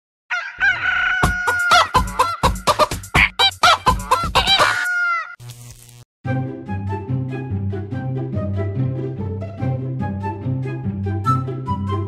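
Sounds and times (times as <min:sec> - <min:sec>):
chicken clucking and crowing: 0:00.3 - 0:05.4
regular drum beat: 0:01.2 - 0:04.6.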